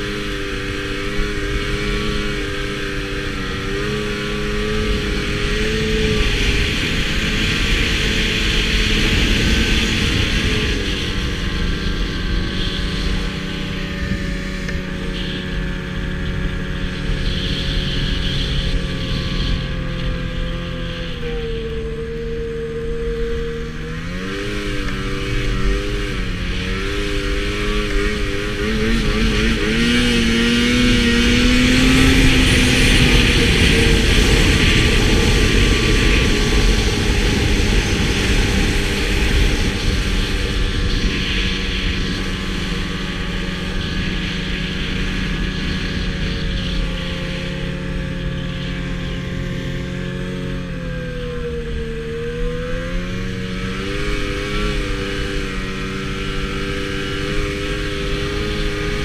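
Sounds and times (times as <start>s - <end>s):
snowmobile engine running: 0.0s - 59.0s.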